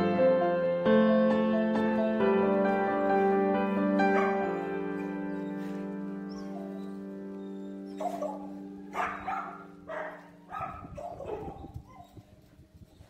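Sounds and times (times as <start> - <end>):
held music chord: 0.0 - 11.0
puppy yapping: 4.1 - 12.2.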